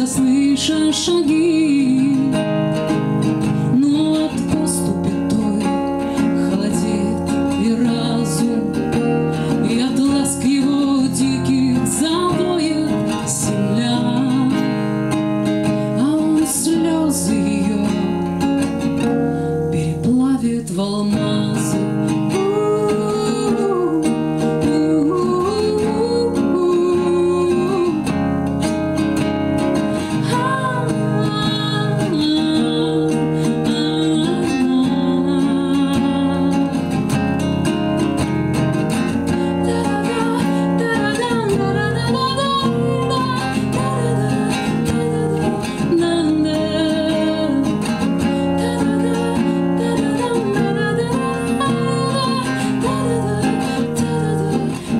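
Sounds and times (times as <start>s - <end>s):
strummed acoustic guitar: 0.0s - 54.9s
woman singing: 0.0s - 54.9s.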